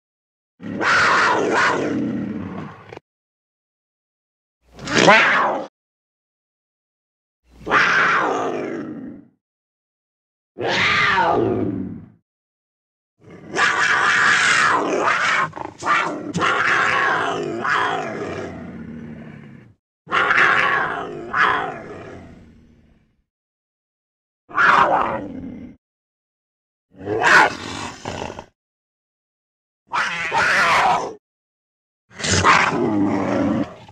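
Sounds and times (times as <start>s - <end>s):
cartoon panther growling and roaring: 0.6s - 3.0s, 4.8s - 5.7s, 7.6s - 9.4s, 10.6s - 12.2s, 13.2s - 23.2s, 24.5s - 25.8s, 26.9s - 28.6s, 29.9s - 31.2s, 32.1s - 33.9s.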